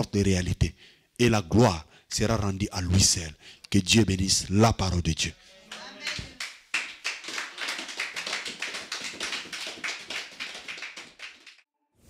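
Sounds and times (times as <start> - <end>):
congregation applauding: 5.7 - 11.6.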